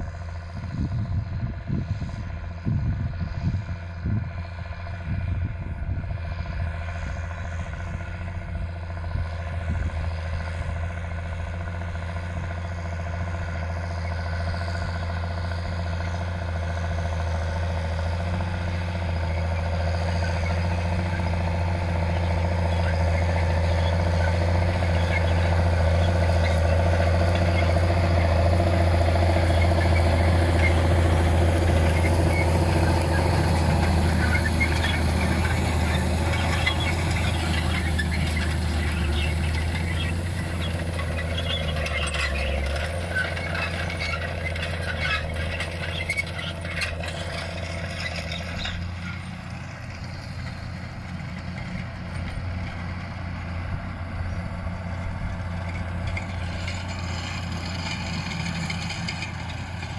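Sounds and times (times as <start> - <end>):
tractor diesel engine: 0.0 - 59.9
cultivator discs rattling in soil: 22.3 - 53.0, 55.4 - 59.9.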